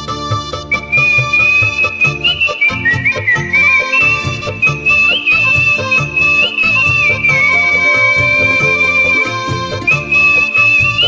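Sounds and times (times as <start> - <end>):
karaoke backing track: 0.0 - 11.0
man whistling a melody: 0.4 - 11.0.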